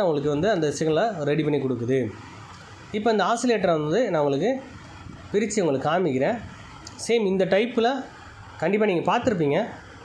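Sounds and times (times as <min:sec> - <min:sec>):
man speaking: 0:00.0 - 0:02.2, 0:02.9 - 0:04.7, 0:05.3 - 0:09.8.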